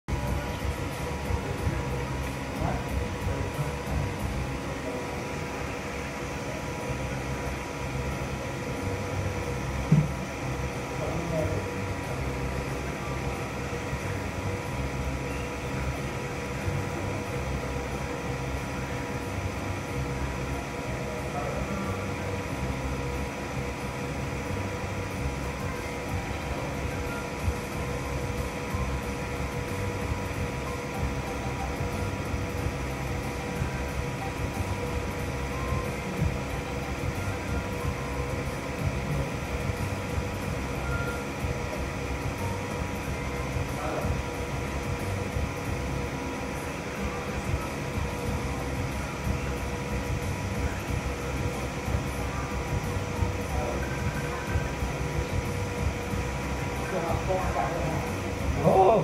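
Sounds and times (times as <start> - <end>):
steady mechanical hum: 0.0 - 59.0
faint indistinct voices: 0.1 - 59.0.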